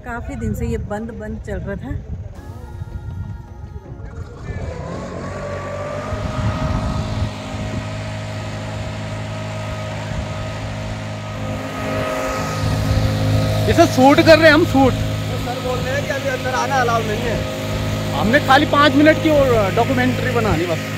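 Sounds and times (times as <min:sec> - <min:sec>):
engine running with a hum: 0:00.0 - 0:20.9.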